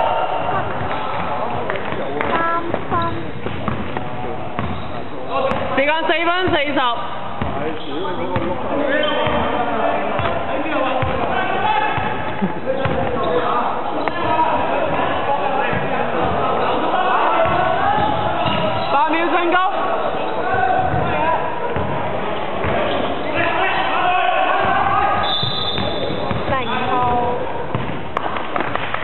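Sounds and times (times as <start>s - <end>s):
basketball bouncing on wooden floor: 0.7s - 4.8s, 11.0s - 11.3s, 12.8s - 13.1s, 25.4s - 29.0s
players calling: 7.5s - 28.9s.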